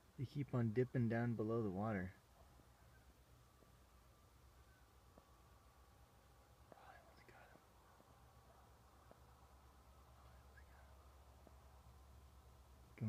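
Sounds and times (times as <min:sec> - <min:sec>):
faint ticks: 0:05.1 - 0:05.4, 0:06.7 - 0:08.2.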